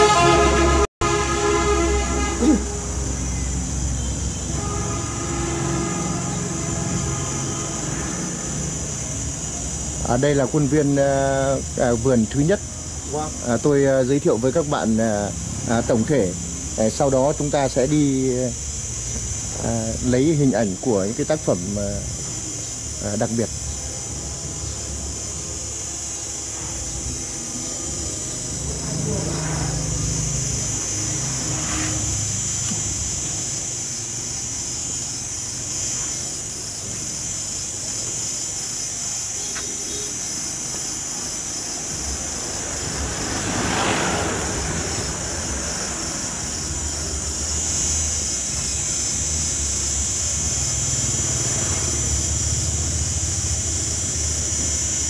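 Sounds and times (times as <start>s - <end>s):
steady high-pitched hiss: 0.0s - 55.0s
vehicle passing: 26.6s - 33.8s, 41.8s - 47.7s, 50.5s - 54.4s.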